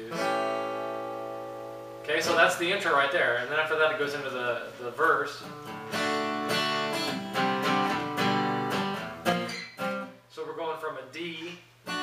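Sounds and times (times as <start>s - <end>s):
acoustic guitar chord strummed: 0.0s - 2.8s, 4.6s - 10.2s.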